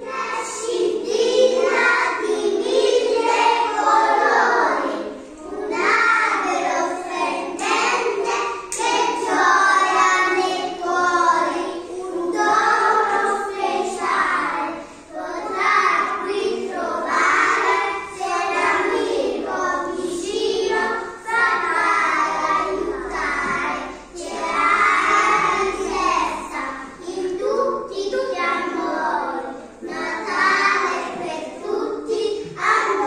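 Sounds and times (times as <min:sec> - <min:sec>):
children singing together: 0:00.0 - 0:33.0.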